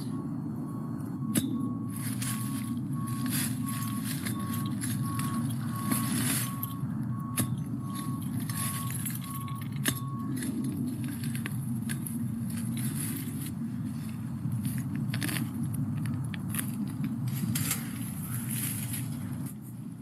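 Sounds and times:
faint high beeps: 0.0s - 10.5s
low background rumble: 0.0s - 20.0s
tiller crunching in soil and leaves: 1.8s - 20.0s.

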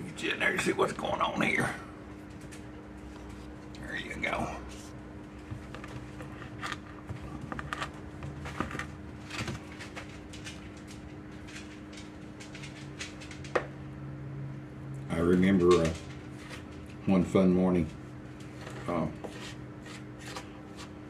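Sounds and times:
steady low hum: 0.0s - 21.0s
wooden spoon stirring dough in bowl: 18.4s - 21.0s.

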